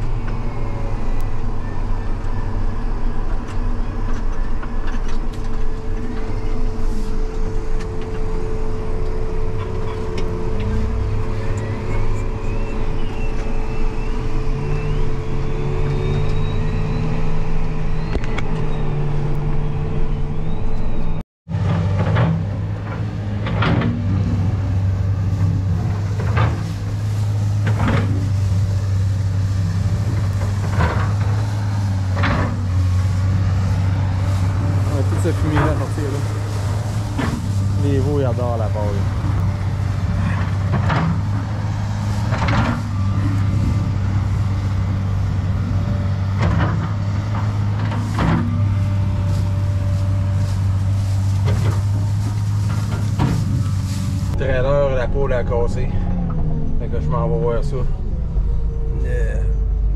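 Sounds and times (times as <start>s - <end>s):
faint wavering whine: 0.0s - 21.2s, 24.2s - 59.9s
tractor engine running: 0.0s - 59.9s.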